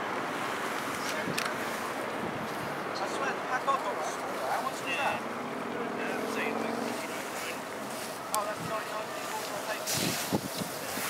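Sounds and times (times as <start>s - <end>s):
wind on microphone: 0.0s - 3.0s, 6.7s - 11.0s
distant voices: 0.0s - 11.0s.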